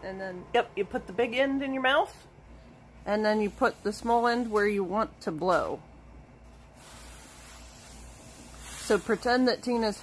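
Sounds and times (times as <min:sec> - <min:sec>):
air hissing through bellows: 0:06.5 - 0:10.0.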